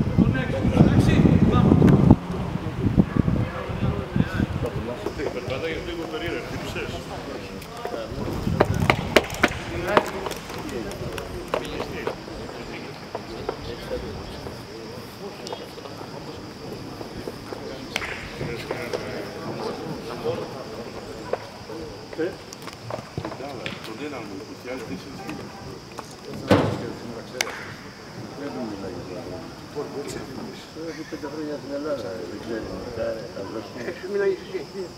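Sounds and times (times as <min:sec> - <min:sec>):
men calling: 0:00.0 - 0:34.9
people talking: 0:00.0 - 0:34.9
loud sharp thump: 0:26.4 - 0:27.7.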